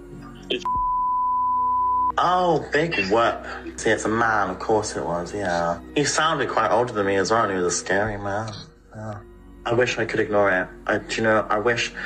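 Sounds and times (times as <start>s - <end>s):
censor bleep: 0.6s - 2.2s.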